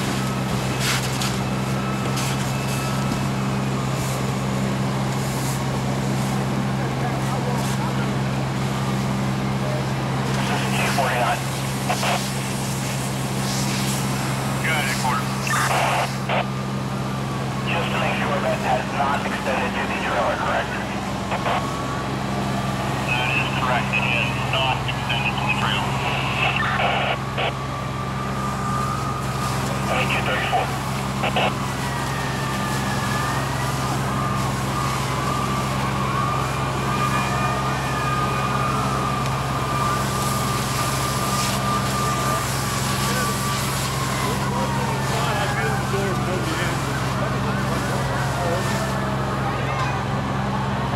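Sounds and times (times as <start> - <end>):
distant siren wailing: 0.0 - 50.9
fire engine humming: 0.0 - 50.9
hose water flowing: 10.2 - 49.0
indistinct voices: 14.2 - 16.5, 17.6 - 21.8, 22.8 - 27.6, 29.3 - 32.1.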